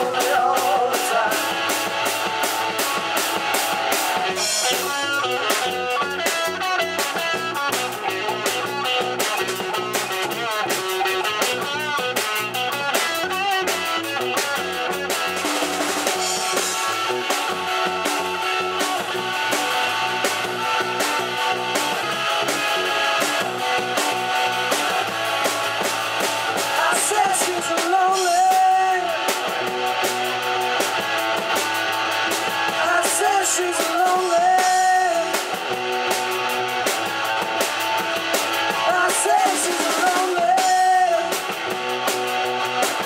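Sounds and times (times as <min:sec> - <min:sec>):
drum kit beat: 0:00.0 - 0:43.0
electric guitars: 0:00.0 - 0:43.0.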